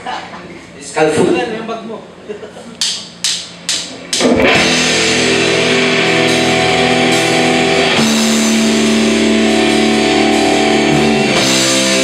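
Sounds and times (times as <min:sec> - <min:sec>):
rock band playing: 0:03.2 - 0:12.0.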